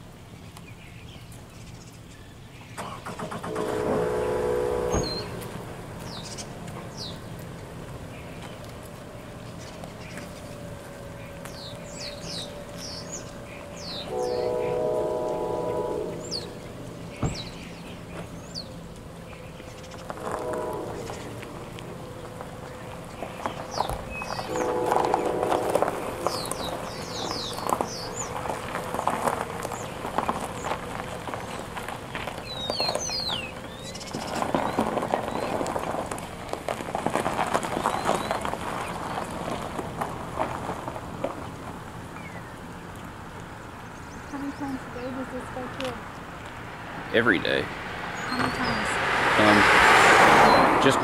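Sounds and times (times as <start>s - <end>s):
locomotive air horn: 3.4s - 5.6s, 13.9s - 16.6s, 20.2s - 21.6s, 24.4s - 26.4s
birds chirping: 4.0s - 51.0s.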